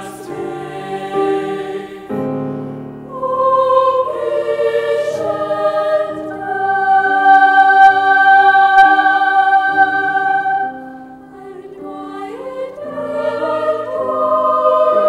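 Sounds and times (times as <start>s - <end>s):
boys' choir singing: 0.0s - 2.4s, 3.1s - 15.0s.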